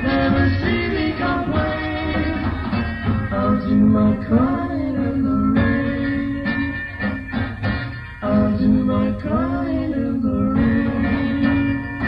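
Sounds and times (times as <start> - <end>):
live band playing slow song: 0.0 - 12.0.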